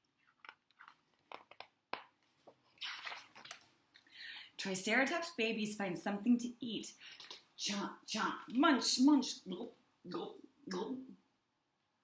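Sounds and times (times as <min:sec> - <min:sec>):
book page rustling: 0:00.0 - 0:03.7.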